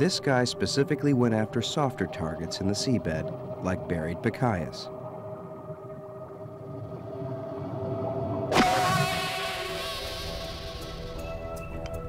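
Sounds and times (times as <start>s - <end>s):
low musical drone: 0.0s - 12.0s
rumble: 0.0s - 12.0s
loud whoosh with falling sweep: 8.5s - 11.3s.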